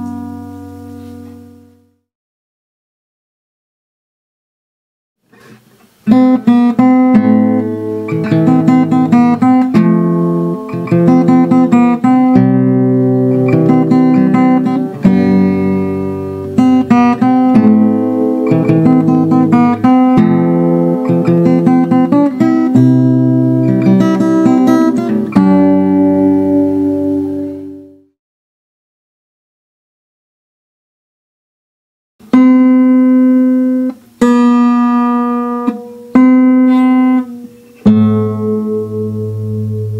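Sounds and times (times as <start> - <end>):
fingerstyle acoustic guitar: 0.0 - 1.8, 5.3 - 28.1, 32.2 - 39.9.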